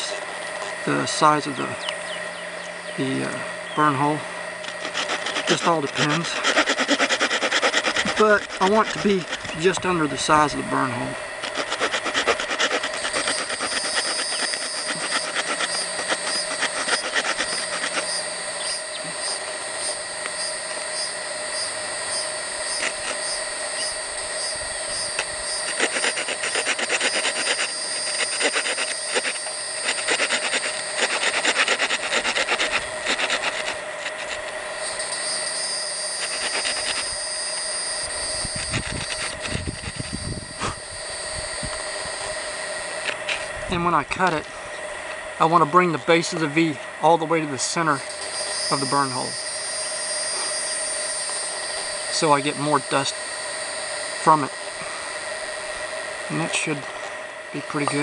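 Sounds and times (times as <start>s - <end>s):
small saw sawing wood: 4.6s - 20.0s, 22.1s - 24.0s, 24.9s - 40.8s.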